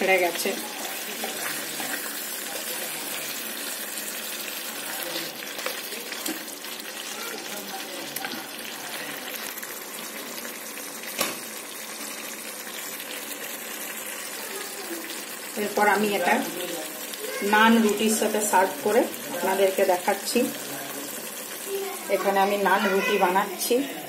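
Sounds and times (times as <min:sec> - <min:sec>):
meat sizzling in ghee: 0:00.0 - 0:24.0.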